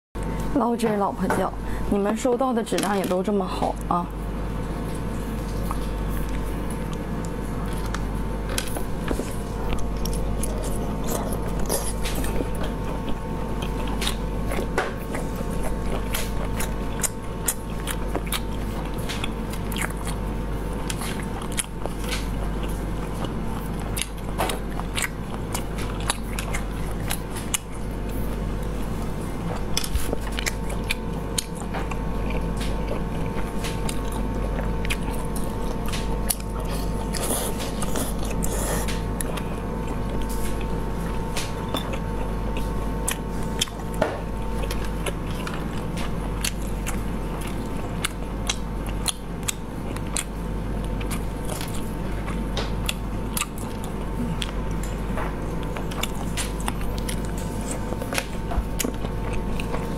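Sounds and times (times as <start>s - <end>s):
chewing snails: 4.6s - 59.9s.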